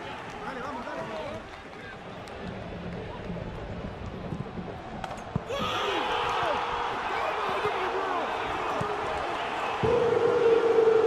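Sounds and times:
crowd shouting and cheering: 0:04.2 - 0:11.0.

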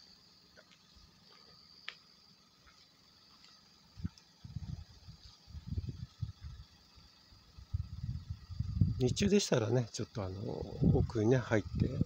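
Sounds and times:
crickets chirring: 0:00.0 - 0:12.0
microphone handling rumble: 0:07.7 - 0:09.3, 0:10.6 - 0:12.0.

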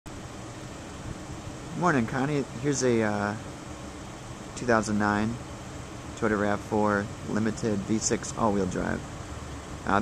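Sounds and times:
background hiss: 0:00.1 - 0:10.0
man speaking: 0:01.7 - 0:03.4, 0:04.6 - 0:05.4, 0:06.2 - 0:09.0.

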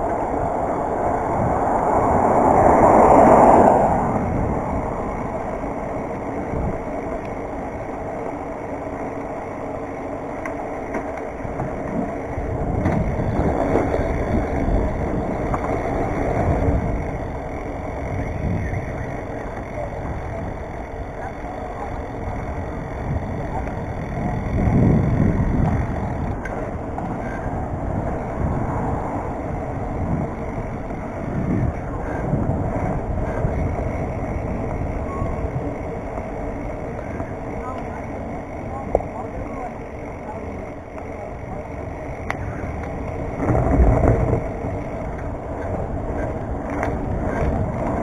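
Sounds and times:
bike tyres rolling on concrete: 0:00.0 - 0:48.0
wind buffeting microphone: 0:00.0 - 0:48.0.

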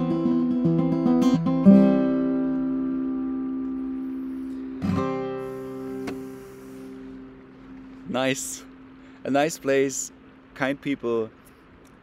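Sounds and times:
strummed acoustic guitar chord: 0:00.0 - 0:09.3.

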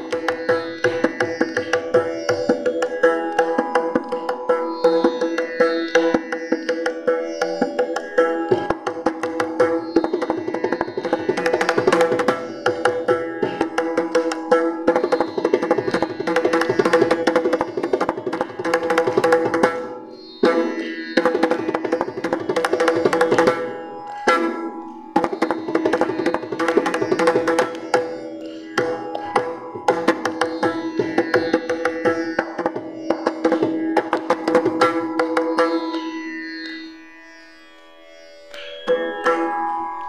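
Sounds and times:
mridangam drum strokes: 0:00.0 - 0:37.0.

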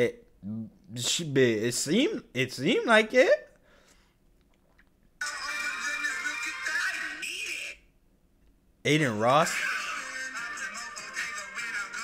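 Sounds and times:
man's voice: 0:05.2 - 0:07.8, 0:08.9 - 0:12.0
person talking: 0:05.2 - 0:07.9, 0:08.9 - 0:12.0
background music: 0:09.4 - 0:12.0.

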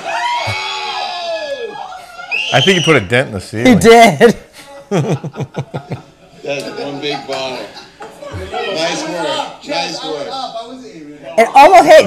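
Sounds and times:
people shrieking and cheering: 0:00.0 - 0:02.6.

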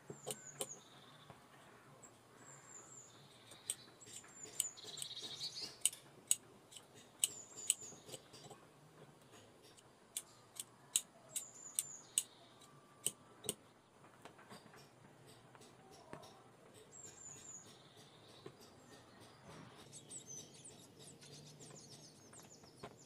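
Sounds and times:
shears snipping leather: 0:03.6 - 0:08.4.

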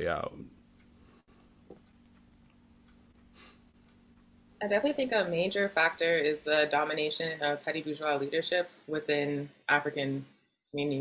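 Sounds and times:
low steady hum: 0:00.0 - 0:10.1.

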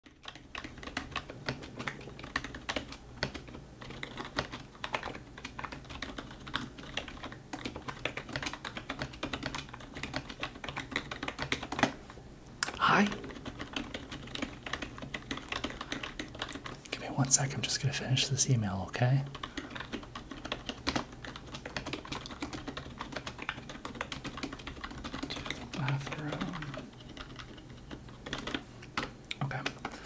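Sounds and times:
keyboard typing: 0:00.0 - 0:12.0, 0:12.6 - 0:30.0.

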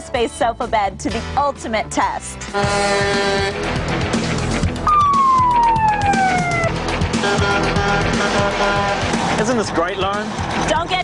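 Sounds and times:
background music: 0:00.0 - 0:11.0
siren falling wail: 0:04.8 - 0:06.8.

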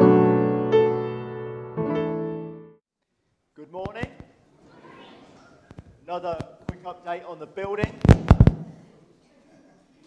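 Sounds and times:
sharp knocks: 0:07.8 - 0:08.8.

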